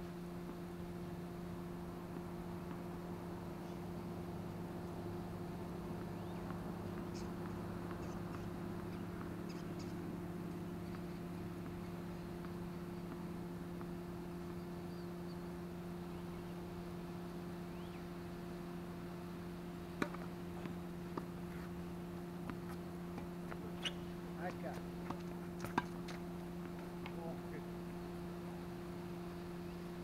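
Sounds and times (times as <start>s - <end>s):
steady low hum: 0.0s - 30.0s
tennis balls struck and bouncing: 19.9s - 27.3s.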